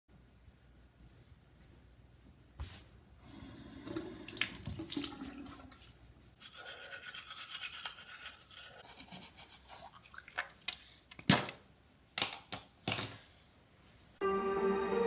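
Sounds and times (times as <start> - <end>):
tap water running into sink: 3.8 - 5.8.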